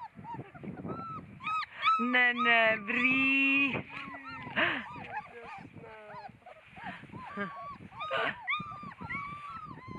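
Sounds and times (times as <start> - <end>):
puppies whimpering and yipping: 0.0 - 9.9.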